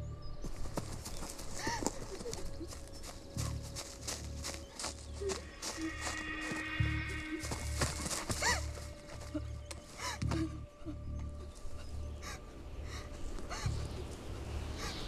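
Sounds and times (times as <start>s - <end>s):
footsteps crunching through grass: 0.4s - 10.0s
tense horror score: 4.9s - 15.0s.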